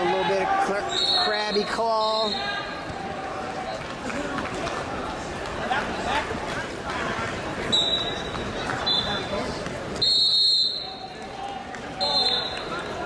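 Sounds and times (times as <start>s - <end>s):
shrill referee whistle blasts: 0.8s - 2.6s, 10.0s - 11.0s, 12.0s - 12.7s.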